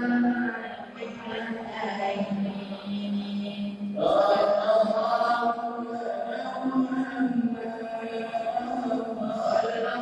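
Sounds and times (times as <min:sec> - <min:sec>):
men chanting in unison: 0:00.8 - 0:10.0.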